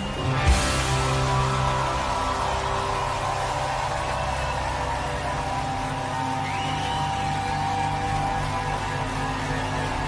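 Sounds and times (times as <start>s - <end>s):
crowd cheering and clapping: 0.0s - 10.0s.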